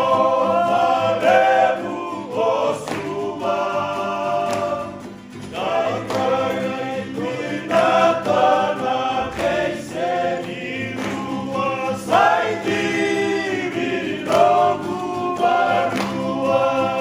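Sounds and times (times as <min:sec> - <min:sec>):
group singing in harmony: 0:00.0 - 0:17.0
strummed acoustic guitars: 0:00.0 - 0:17.0
ukulele: 0:00.0 - 0:17.0.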